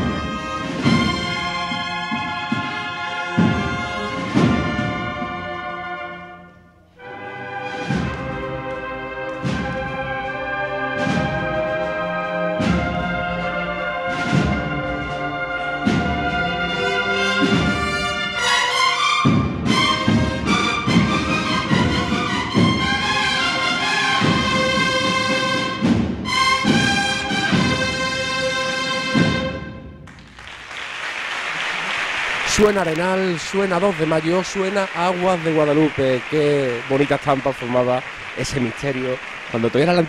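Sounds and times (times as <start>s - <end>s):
cornet and drum band march: 0.0s - 6.4s, 7.0s - 40.0s
audience applause: 30.0s - 40.0s.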